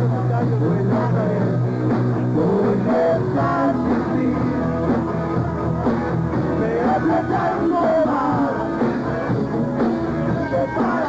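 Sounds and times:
electric guitar line: 0.0 - 11.0
hard rock band playing live: 0.0 - 11.0.

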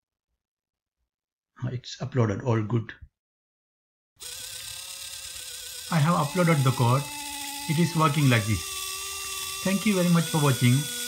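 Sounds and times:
small servo motor whine: 4.2 - 11.0.

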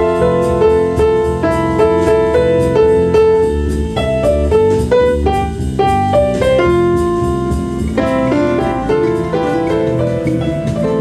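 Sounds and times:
held keyboard melody: 0.0 - 11.0
piano chords: 0.0 - 11.0.

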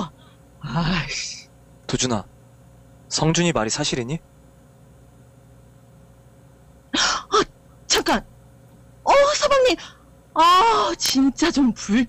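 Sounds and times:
person speaking: 9.1 - 12.0.

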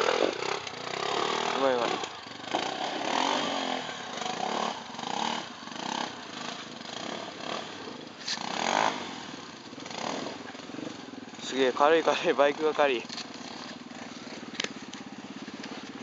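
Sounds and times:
motorcycle engine revving: 0.0 - 16.0.

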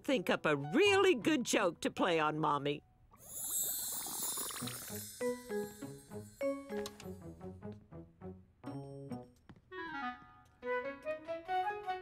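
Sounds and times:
shimmering chime sweep: 3.2 - 6.7
bouncy cartoon music: 4.2 - 12.0.

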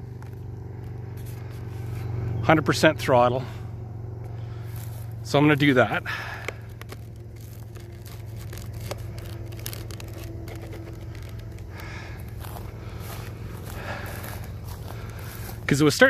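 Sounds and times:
footsteps through dry grass: 0.0 - 16.0
low hum: 0.0 - 16.0.

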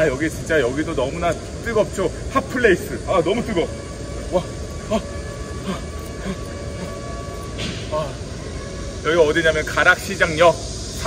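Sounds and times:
city rumble: 0.0 - 11.0
faint steady hum: 0.0 - 11.0.

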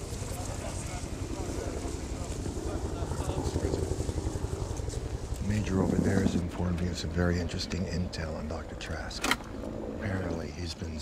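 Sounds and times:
low mechanical rumble with flutter: 0.0 - 11.0.

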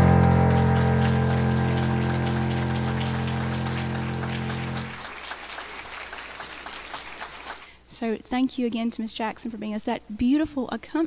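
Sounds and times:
keyboard chord held: 0.0 - 5.1
light audience clapping: 0.0 - 7.7.

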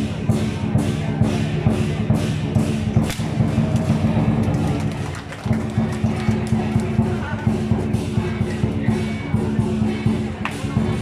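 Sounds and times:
music with low drone: 0.0 - 11.0.

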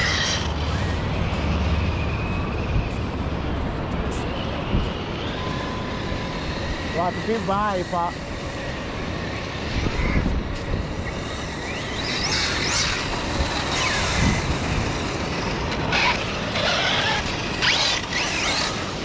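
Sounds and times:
electric motors whining: 0.0 - 19.0
steady rush of noise: 0.0 - 19.0.

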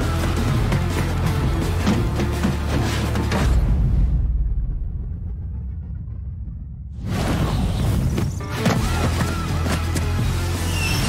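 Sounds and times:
deep low rumble: 3.5 - 8.2.

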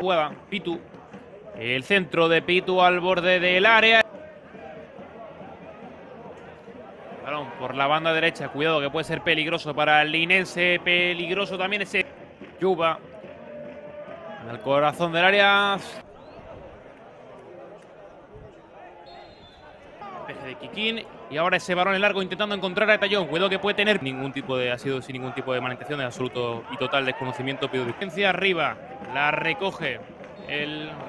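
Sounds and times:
faint shouts of players: 3.8 - 9.7, 13.0 - 31.0.

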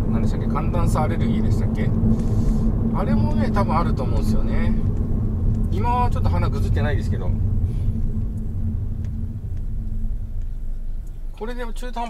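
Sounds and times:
car cabin road rumble: 0.0 - 12.0.

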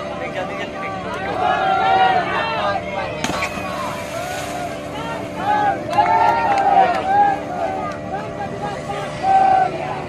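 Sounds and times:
heavy splash into water: 3.2 - 4.7
wash of spray: 3.3 - 4.8.

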